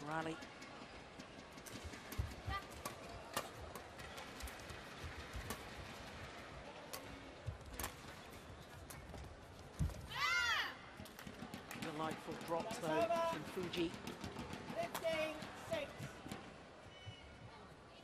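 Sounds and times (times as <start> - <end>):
rackets striking shuttlecock: 1.6 - 8.2, 11.0 - 15.6.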